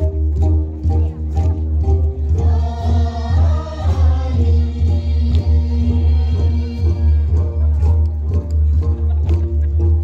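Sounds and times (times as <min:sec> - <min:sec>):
pulsing low bass: 0:00.0 - 0:10.0
group singing: 0:02.3 - 0:07.4.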